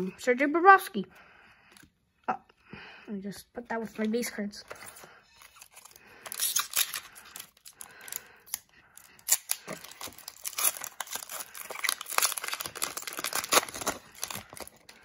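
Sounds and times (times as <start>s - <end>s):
cards rustling: 3.8s - 15.0s
foil wrapper tearing and crinkling: 5.4s - 15.0s.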